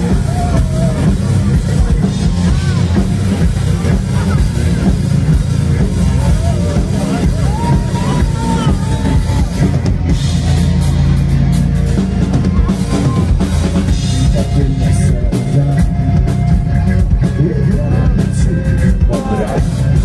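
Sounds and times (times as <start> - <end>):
bass guitar: 0.0 - 20.0
drum kit beat: 0.0 - 20.0
electric guitars: 0.0 - 20.0.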